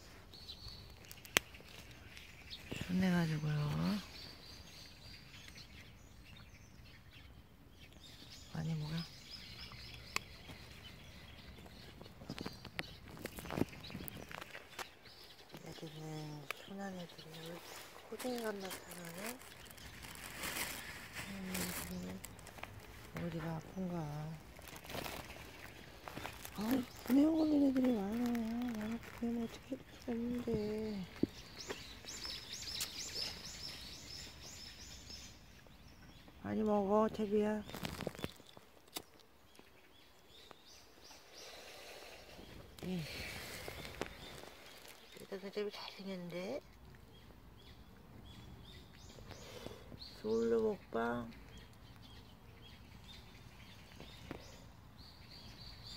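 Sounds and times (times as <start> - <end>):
bird chirping: 0.0 - 55.9.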